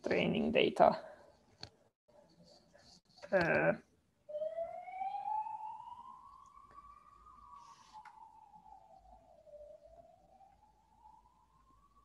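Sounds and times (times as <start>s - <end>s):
faint siren wailing: 4.2s - 12.0s.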